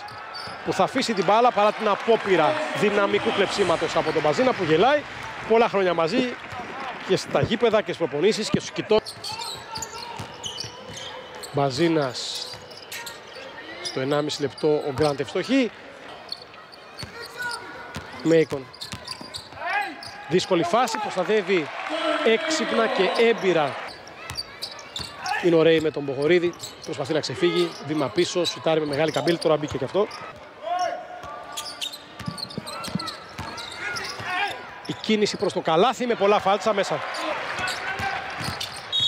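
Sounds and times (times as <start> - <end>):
high shoe squeak: 0.0 - 0.6, 9.0 - 11.6, 12.3 - 15.2, 16.3 - 20.2, 23.1 - 30.4, 31.5 - 35.2, 37.6 - 39.0
crowd noise: 0.0 - 39.0.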